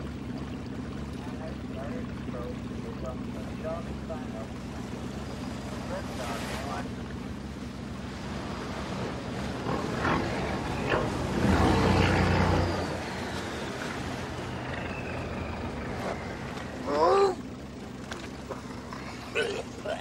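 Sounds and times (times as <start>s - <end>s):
motor boat engine running: 0.0s - 20.0s
water lapping against hull: 0.0s - 20.0s.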